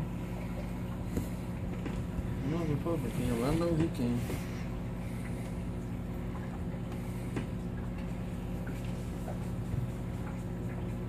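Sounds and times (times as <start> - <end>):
aquarium filter humming: 0.0 - 11.0.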